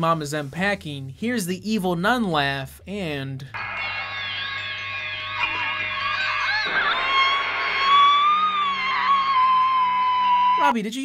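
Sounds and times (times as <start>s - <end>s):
woman screaming: 5.6s - 10.7s.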